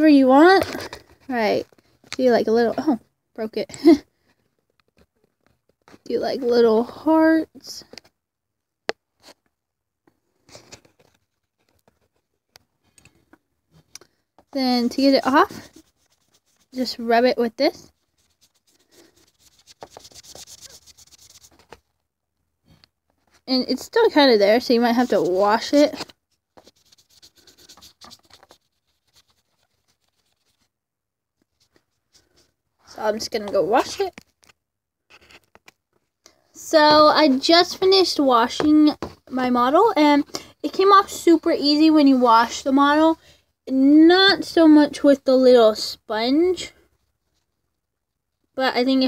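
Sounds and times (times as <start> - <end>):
chalk scratching on plastic: 15.0 - 17.0, 17.7 - 21.8, 24.7 - 30.7.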